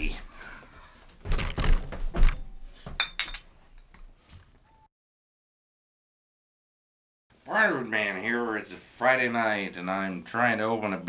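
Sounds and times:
glass knock: 2.1s - 4.1s
glass clinking: 2.4s - 4.1s.

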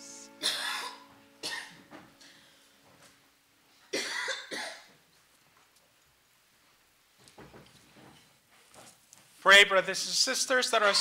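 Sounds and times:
person coughing: 0.4s - 1.8s, 3.9s - 4.9s.

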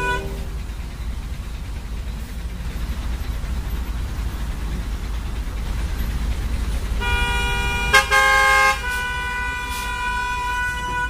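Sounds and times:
held musical notes: 0.0s - 1.1s
bus engine and road noise: 0.0s - 11.0s.

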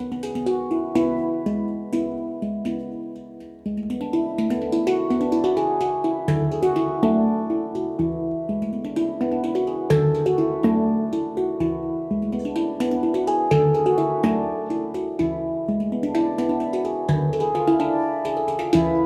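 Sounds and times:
handpans played by hand: 0.0s - 19.0s.

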